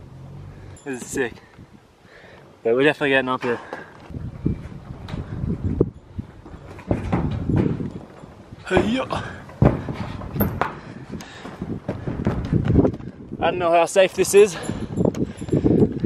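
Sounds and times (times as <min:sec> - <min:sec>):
knocks and thumps on sheet metal roof: 0:06.6 - 0:12.8.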